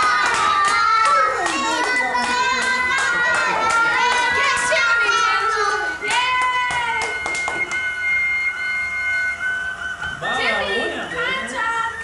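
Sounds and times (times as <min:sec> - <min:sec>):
people and children talking: 0:00.0 - 0:07.2
high whining tones: 0:00.0 - 0:12.0.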